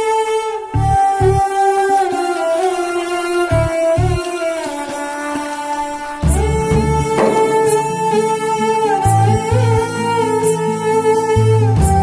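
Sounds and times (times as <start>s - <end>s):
background music score: 0.0s - 12.0s.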